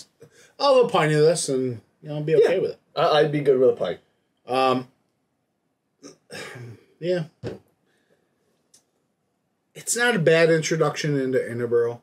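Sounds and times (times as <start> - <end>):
man clearing his throat: 6.0 - 7.2.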